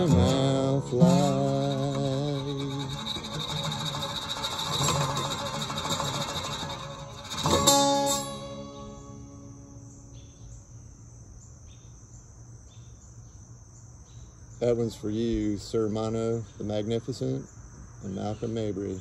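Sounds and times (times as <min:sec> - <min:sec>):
acoustic guitar strumming: 0:00.0 - 0:10.5
high-pitched insect drone: 0:00.0 - 0:11.9.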